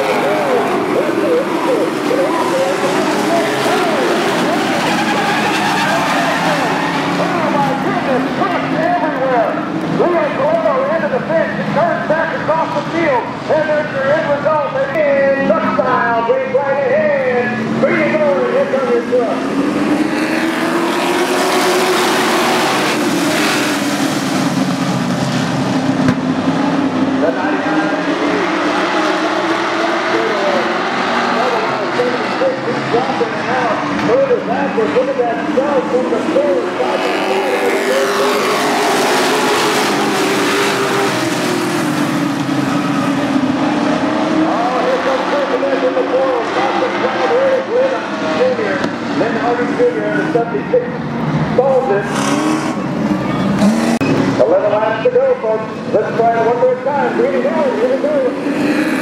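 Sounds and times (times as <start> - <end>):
race truck engines: 0.0 - 59.0.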